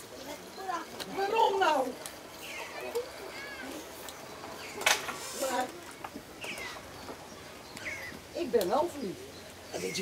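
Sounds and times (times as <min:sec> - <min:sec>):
outdoor audience ambience: 0:00.0 - 0:10.0.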